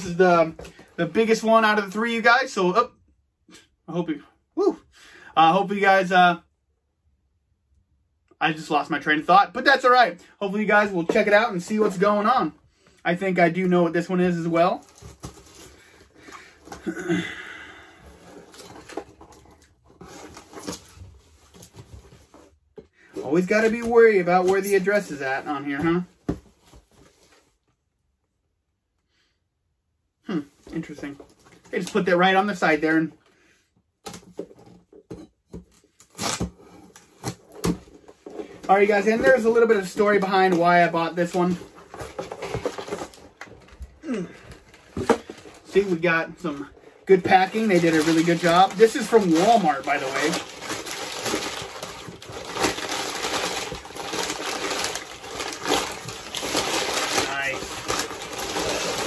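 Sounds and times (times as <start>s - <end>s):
cardboard and tape rustling: 10.5s - 12.4s, 13.2s - 17.0s, 17.8s - 27.7s, 34.0s - 59.0s.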